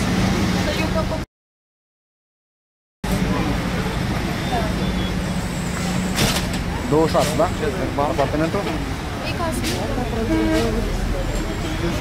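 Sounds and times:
engine-like hum: 0.0s - 1.3s, 3.0s - 12.0s
low traffic rumble: 0.0s - 1.3s, 3.0s - 12.0s
faint voices: 6.6s - 12.0s.

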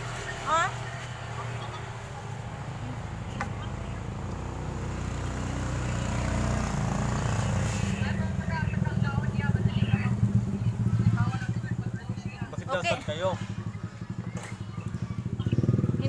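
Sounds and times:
vehicle engine rumble: 0.0s - 16.0s.

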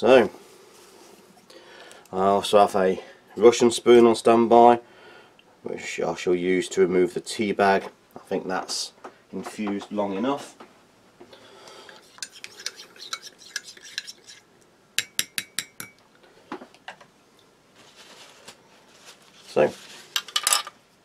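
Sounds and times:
spoon scraping in a mug: 11.9s - 14.5s.

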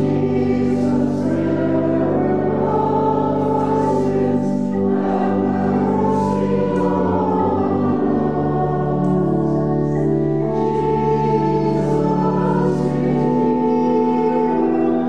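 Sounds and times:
choir singing a hymn: 0.0s - 15.0s
pipe organ chords: 0.0s - 15.0s.

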